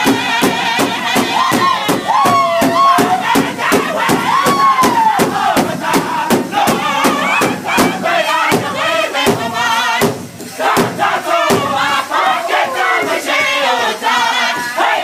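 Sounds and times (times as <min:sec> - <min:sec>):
fast steady drum beat: 0:00.0 - 0:15.0
group singing: 0:00.0 - 0:15.0.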